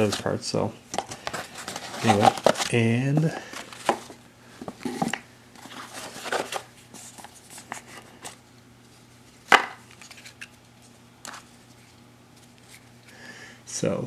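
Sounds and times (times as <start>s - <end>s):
cards rustling: 1.0s - 13.2s
cardboard box opening: 1.3s - 2.8s.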